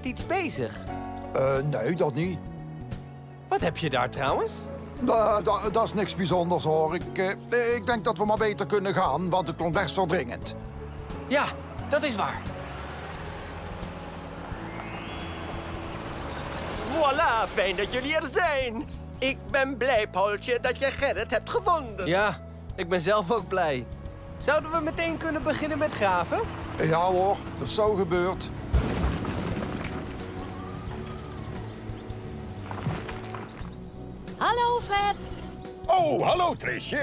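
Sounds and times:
cartoon background music: 0.0 - 37.0
faint rising sweep: 12.4 - 18.0
cartoon engine and road rumble: 12.4 - 19.2, 23.8 - 34.4
low thud: 28.7 - 30.4
excavator breaking pavement: 28.7 - 30.5, 32.6 - 33.8.

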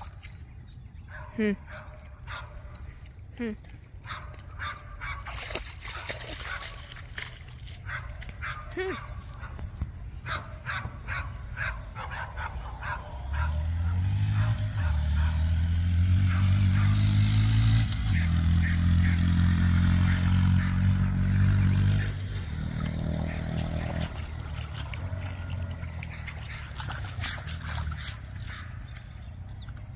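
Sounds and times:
dog barking: 1.1 - 2.6, 4.0 - 5.3, 7.8 - 9.6, 10.2 - 15.5, 16.3 - 17.1
small motorcycle engine running: 12.8 - 29.8.

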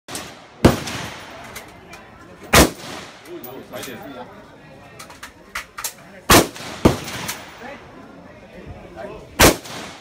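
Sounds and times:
rifle shot with ringing echo: 0.1 - 1.4, 2.5 - 3.2, 6.3 - 7.6, 9.4 - 10.0.

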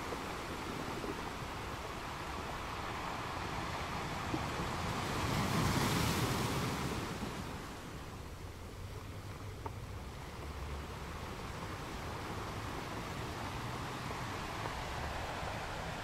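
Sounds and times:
ocean waves hissing: 12.9 - 16.0.

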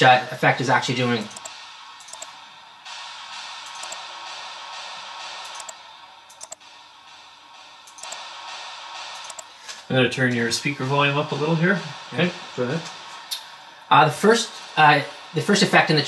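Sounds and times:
white noise hiss effect: 0.0 - 16.0.

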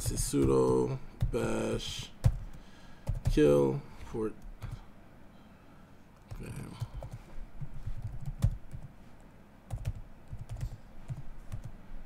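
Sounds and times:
computer keyboard keystrokes: 0.1 - 3.4, 8.0 - 8.9, 9.7 - 11.7.

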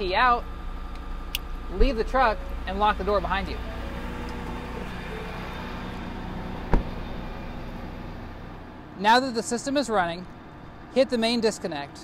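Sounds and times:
truck engine running: 0.0 - 12.0
car door shutting: 3.7 - 7.8.

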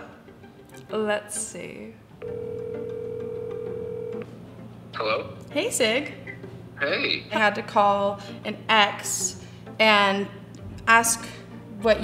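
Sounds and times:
phone ringback tone: 2.2 - 4.3.

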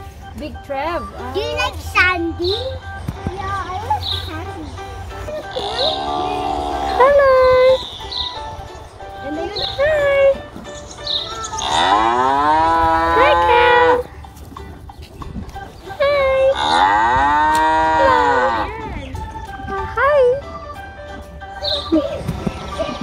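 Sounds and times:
cows mooing: 5.3 - 7.8, 11.5 - 14.0, 16.4 - 18.8.

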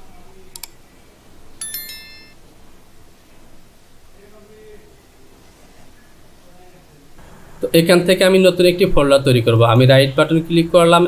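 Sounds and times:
bell-like notification chime: 1.6 - 2.4.

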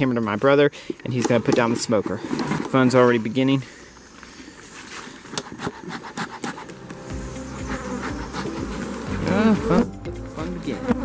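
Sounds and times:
honeybees buzzing: 5.5 - 11.0.

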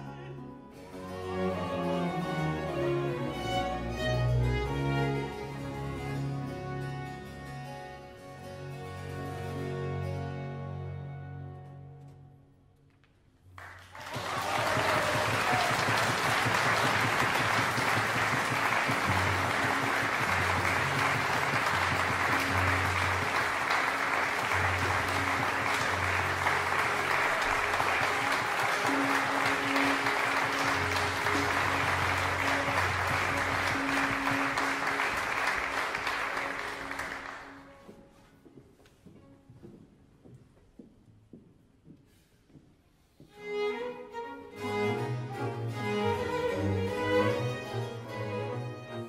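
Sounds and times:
audience applauding: 13.6 - 37.8.

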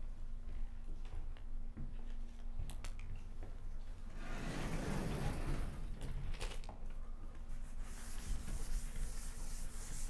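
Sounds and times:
sliding panel scraping: 4.2 - 5.9.

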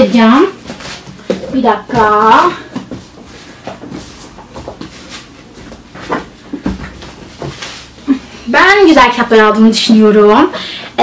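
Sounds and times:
books handled by hand: 0.5 - 8.0.

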